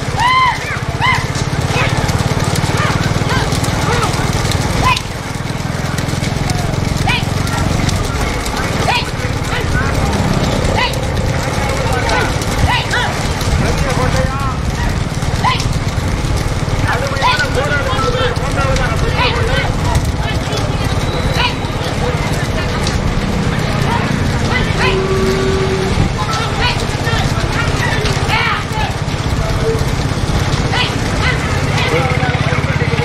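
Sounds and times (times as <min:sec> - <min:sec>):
cart rattling: 0:00.0 - 0:33.0
hooves clattering on tarmac: 0:00.0 - 0:33.0
men shouting: 0:00.0 - 0:33.0
motor running: 0:00.0 - 0:33.0.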